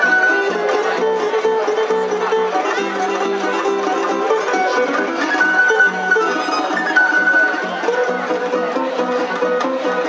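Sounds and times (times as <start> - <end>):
plucked bass: 0.0 - 10.0
plucked string orchestra: 0.0 - 10.0.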